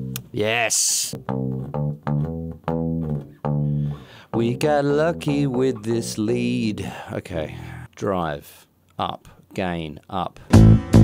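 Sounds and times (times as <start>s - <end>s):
electric bass guitar plucked: 0.0s - 0.4s, 1.1s - 6.7s, 10.5s - 11.0s.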